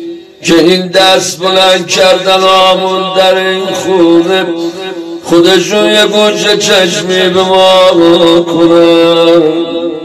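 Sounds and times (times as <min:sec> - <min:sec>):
man chanting an elegy: 0:00.0 - 0:10.0.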